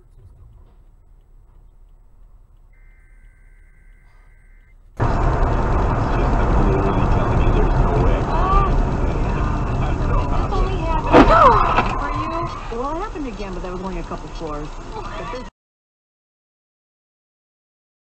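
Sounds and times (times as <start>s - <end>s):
person's voice: 0.0s - 0.7s, 6.0s - 15.5s
car cabin noise while driving: 0.0s - 15.5s
road noise: 0.0s - 15.5s
steady electronic beep: 2.7s - 4.8s, 11.3s - 13.7s.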